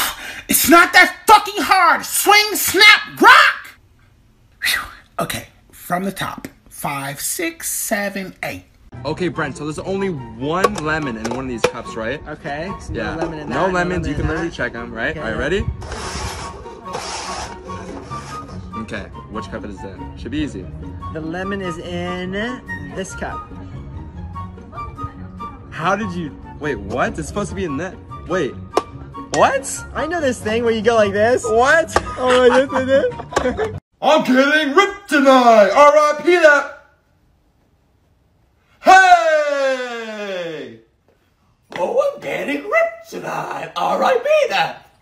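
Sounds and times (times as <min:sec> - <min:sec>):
man yelling: 0:00.0 - 0:03.8, 0:34.0 - 0:36.9, 0:38.8 - 0:40.9, 0:41.7 - 0:44.9
background music: 0:07.7 - 0:33.8
plastic cups scraping on table: 0:15.8 - 0:18.6.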